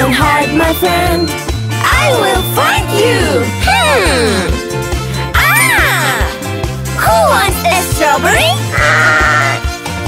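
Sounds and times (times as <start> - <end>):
bouncy children's song backing track: 0.0 - 10.0
cartoon sheep bleating: 8.6 - 9.8.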